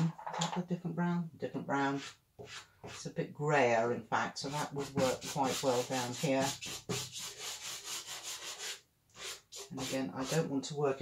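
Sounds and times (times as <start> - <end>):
pastel scratching on paper: 2.0 - 3.1, 4.5 - 10.5.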